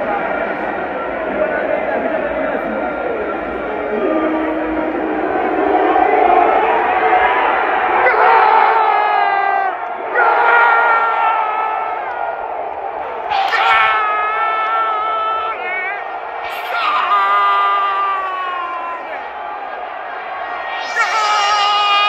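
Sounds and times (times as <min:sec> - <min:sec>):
fans cheering and shouting: 0:00.0 - 0:22.0
stadium crowd din: 0:00.0 - 0:22.0.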